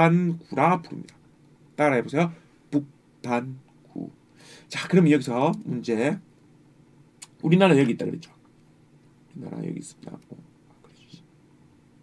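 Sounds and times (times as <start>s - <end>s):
man speaking: 0.0s - 1.2s, 1.8s - 6.2s, 7.3s - 8.4s, 9.3s - 11.2s
faint steady hum: 0.0s - 12.0s.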